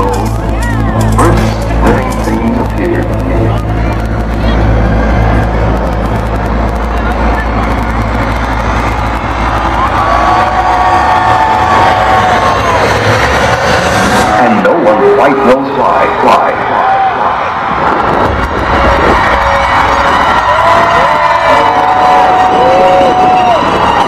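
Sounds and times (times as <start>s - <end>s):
crowd noise and shouting: 0.0s - 24.0s
heavy bass drone: 0.0s - 24.0s.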